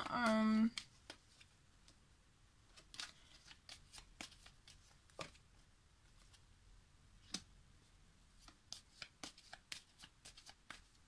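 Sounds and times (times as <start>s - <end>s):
cards being shuffled: 0.0s - 2.0s, 2.7s - 5.4s, 8.4s - 11.0s.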